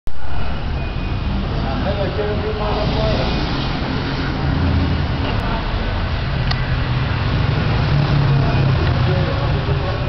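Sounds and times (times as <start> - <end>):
traffic rumble: 0.1 - 10.0.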